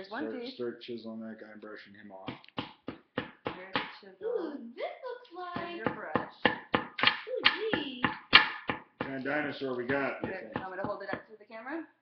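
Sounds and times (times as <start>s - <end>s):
voices talking: 0.0s - 2.4s, 3.5s - 8.2s, 9.0s - 11.8s
hand tools tapping chiseling: 5.6s - 11.2s.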